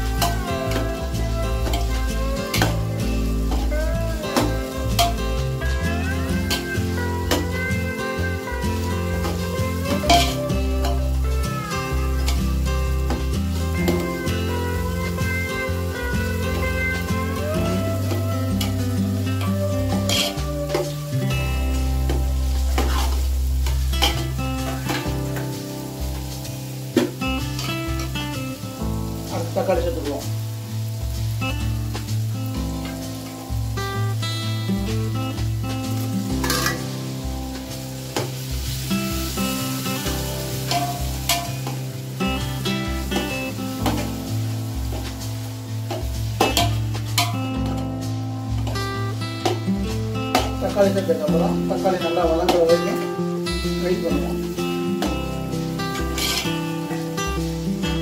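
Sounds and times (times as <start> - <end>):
background music with bass: 0.0 - 58.0
food sizzling in a pot: 0.0 - 58.0
metal spoon scraping a pot: 20.0 - 20.9, 56.1 - 56.6.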